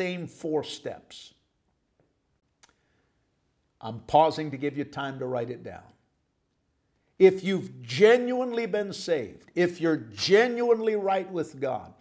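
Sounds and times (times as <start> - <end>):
man's voice: 0.0 - 1.3, 3.8 - 6.0, 7.2 - 12.0.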